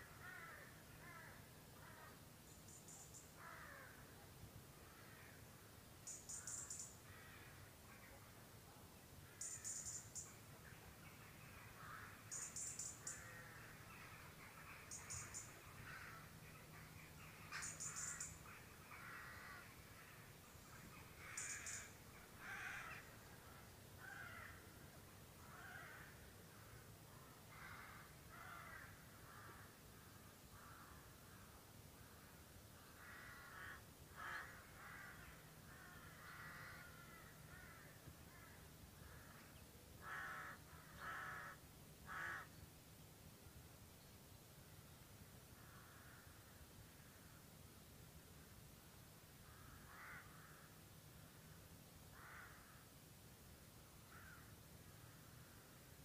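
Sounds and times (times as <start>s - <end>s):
crow cawing: 0.0s - 2.2s, 3.4s - 4.0s, 4.9s - 5.4s, 6.3s - 7.7s, 11.7s - 16.3s, 16.9s - 20.2s, 21.2s - 23.1s, 24.0s - 24.7s, 25.4s - 26.7s, 27.5s - 29.8s, 30.6s - 39.4s, 40.0s - 42.5s, 45.6s - 46.4s, 49.4s - 50.8s, 52.1s - 52.8s, 54.1s - 55.2s
softer lower bird calls: 0.0s - 4.2s, 4.8s - 8.4s, 9.2s - 42.7s
faint low hum: 0.0s - 56.0s
high chattering bird calls: 6.1s - 7.0s, 11.1s - 13.4s, 14.0s - 19.7s, 20.8s - 22.0s.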